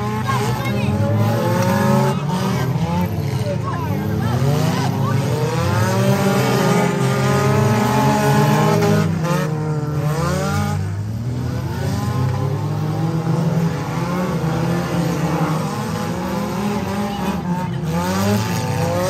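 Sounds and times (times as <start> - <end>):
race car engines revving: 0.0 - 19.0.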